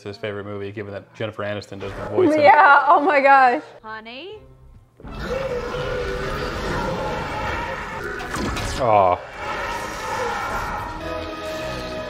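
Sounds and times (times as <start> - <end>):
dramatic orchestral music: 9.2 - 12.0.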